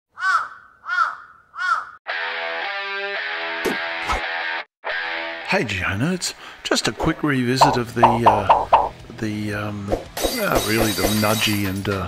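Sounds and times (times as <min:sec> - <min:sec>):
crow cawing: 0:00.1 - 0:02.0.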